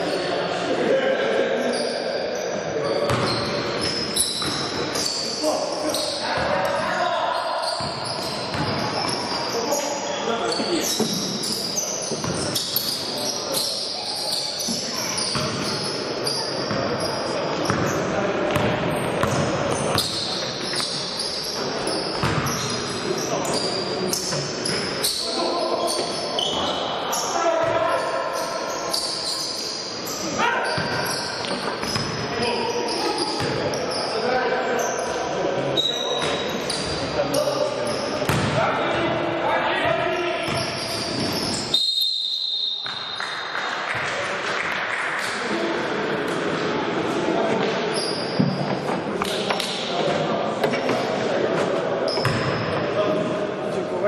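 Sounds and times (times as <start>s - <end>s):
players' voices echoing: 0.0s - 54.0s
basketball bouncing on gym floor: 3.1s - 4.6s, 38.3s - 38.6s
high steady whistle tone: 40.8s - 43.4s.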